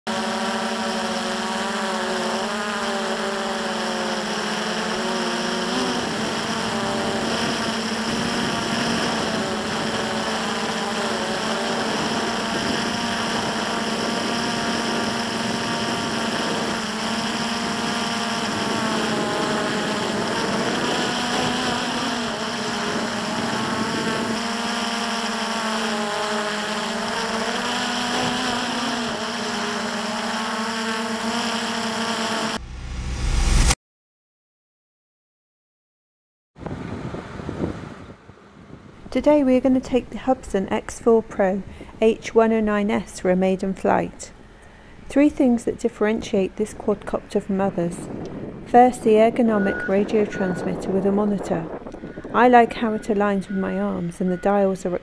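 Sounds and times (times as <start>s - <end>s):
quadcopter propellers whining: 0.0s - 32.6s, 36.6s - 55.0s.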